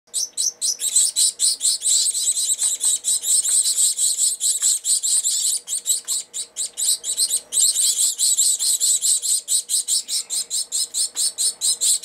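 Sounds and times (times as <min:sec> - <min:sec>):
finch chicks begging calls: 0:00.1 - 0:12.0.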